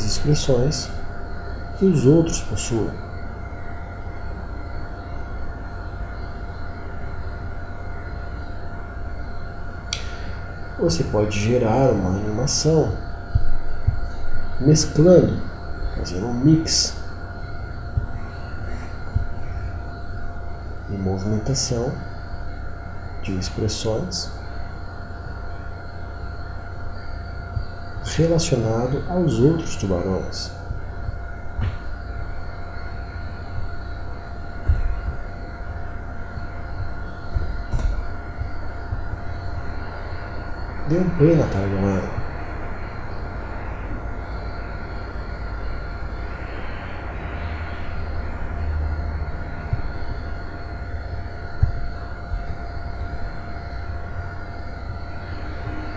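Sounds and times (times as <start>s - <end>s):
low hum and hiss: 0.0s - 55.9s
thin whining tones: 0.0s - 55.9s.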